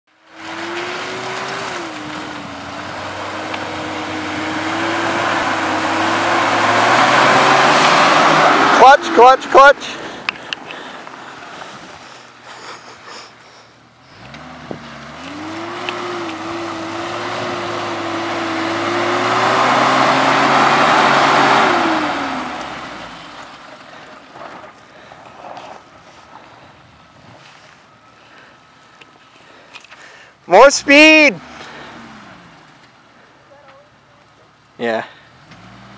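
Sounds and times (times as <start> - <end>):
car engine revving: 0.2 - 12.2, 13.8 - 24.5, 30.6 - 33.0, 35.2 - 35.9.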